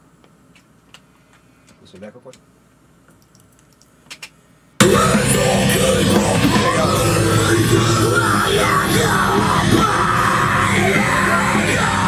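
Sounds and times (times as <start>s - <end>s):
loud rock music: 4.8s - 12.0s.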